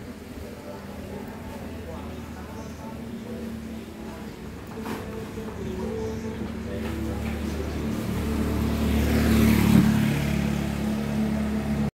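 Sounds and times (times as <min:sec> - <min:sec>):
motor scooter engine running: 0:05.4 - 0:11.9.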